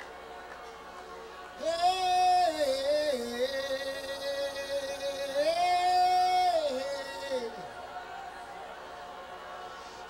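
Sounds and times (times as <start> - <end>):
man singing long notes: 1.6 - 7.6.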